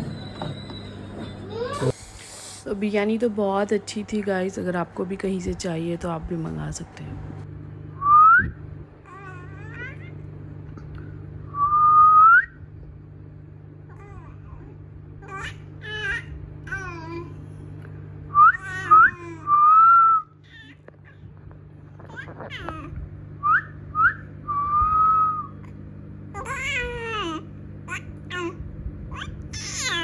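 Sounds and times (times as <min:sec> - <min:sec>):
baby squealing: 0:01.2 - 0:02.0, 0:18.6 - 0:19.6, 0:26.4 - 0:30.0
person whistling: 0:08.0 - 0:08.6, 0:11.5 - 0:12.6, 0:23.5 - 0:25.6.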